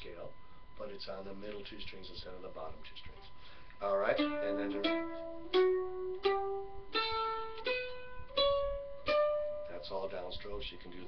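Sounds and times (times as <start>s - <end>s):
mandolin picking a scale: 3.8s - 11.0s.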